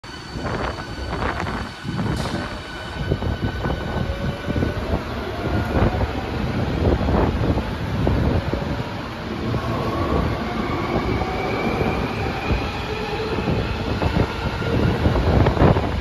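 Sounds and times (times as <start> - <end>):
electric train rumbling: 0.0 - 16.0.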